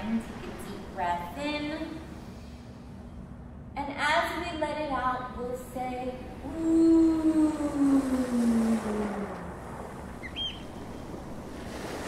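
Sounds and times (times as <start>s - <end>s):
ocean surf: 7.1s - 12.0s.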